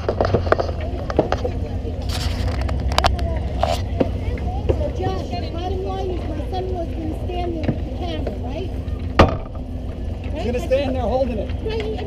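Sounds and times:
voices calling out: 0.0s - 12.0s.

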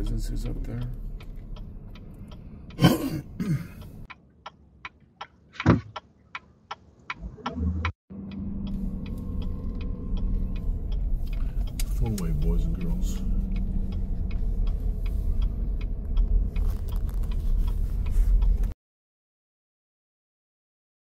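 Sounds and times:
car engine and road hum: 0.0s - 18.8s
turn signal ticking: 0.0s - 18.8s.

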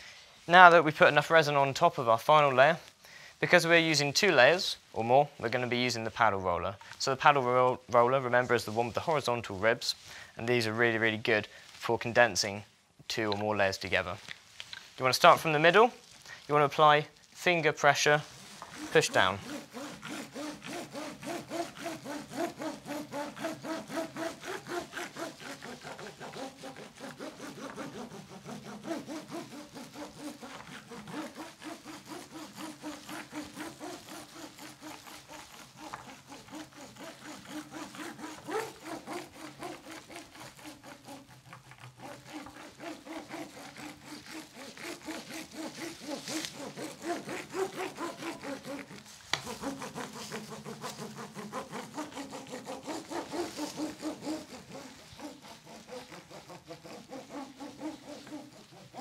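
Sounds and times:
paddle roller rubbing on fibreglass: 4.2s - 59.0s.

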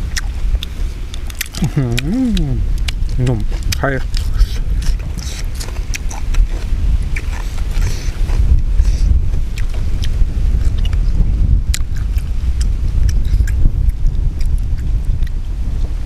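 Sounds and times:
wind buffeting microphone: 0.0s - 16.0s
chewing and food handling clicks: 0.1s - 11.0s, 11.7s - 15.4s.

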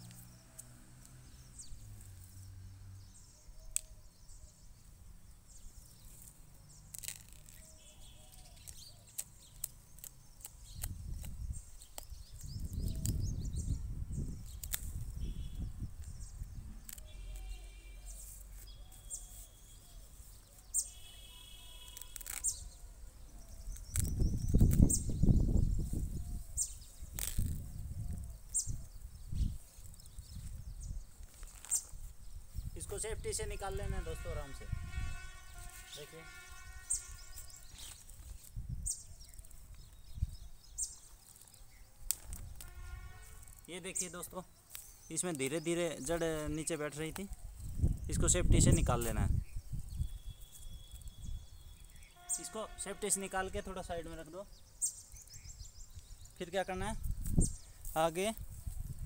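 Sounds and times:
plastic bag crackling and rustling: 31.2s - 32.2s.

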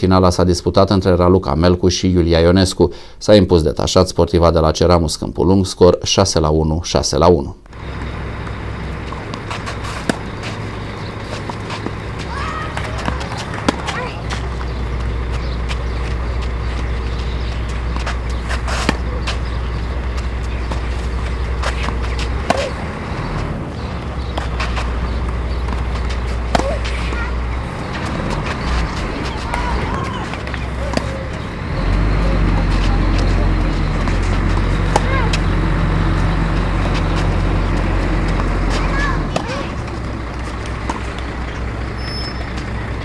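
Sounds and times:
tennis ball struck by rackets: 7.8s - 31.5s, 32.2s - 35.6s, 36.2s - 42.7s.

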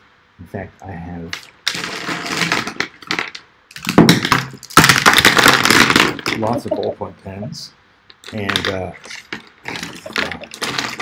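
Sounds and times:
plastic pens rattling together: 8.2s - 11.0s.

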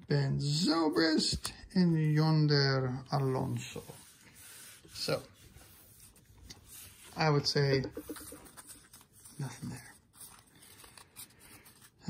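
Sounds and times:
cards rustling: 5.6s - 12.0s.

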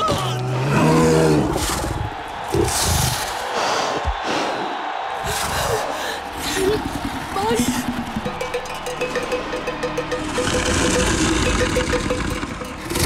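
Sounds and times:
fast repeated musical note: 7.4s - 12.9s.

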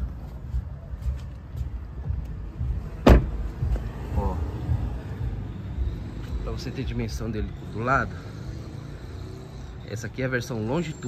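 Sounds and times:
steady rumbling: 1.6s - 10.8s
car door shutting: 3.0s - 3.9s.

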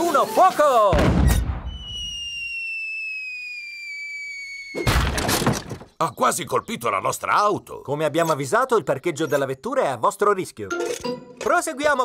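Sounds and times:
cartoon cannon boom: 0.9s - 2.1s, 4.8s - 5.7s
whistle falling in pitch: 1.2s - 4.9s
crash on the ground: 4.8s - 5.8s.

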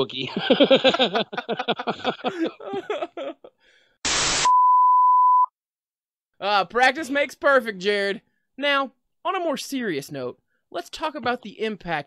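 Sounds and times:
tv static burst: 4.1s - 4.6s
steady test-tone beep: 4.4s - 5.5s.

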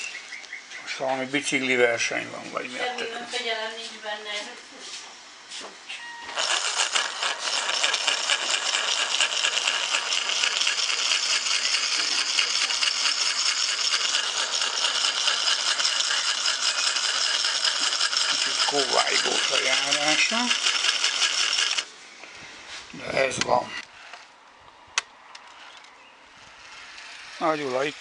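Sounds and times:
model locomotive motor rattling: 6.2s - 21.9s, 25.4s - 28.0s.

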